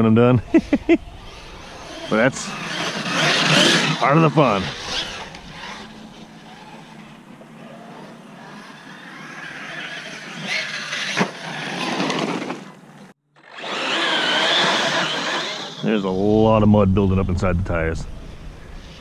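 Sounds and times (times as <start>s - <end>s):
electric motor whining: 0.9s - 12.6s, 13.4s - 16.3s.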